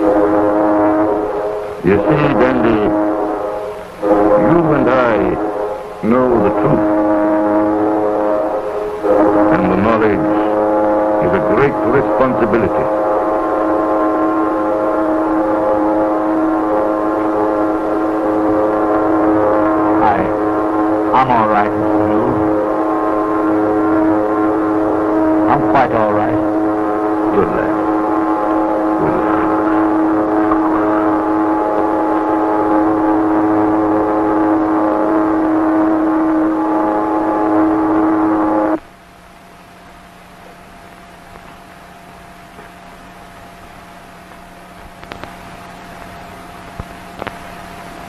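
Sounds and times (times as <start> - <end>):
ship's siren blast: 0.0 - 38.8.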